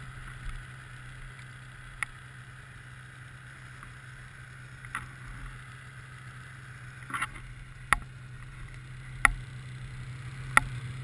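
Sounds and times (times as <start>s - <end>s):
snowmobile engine idling: 0.0s - 11.0s.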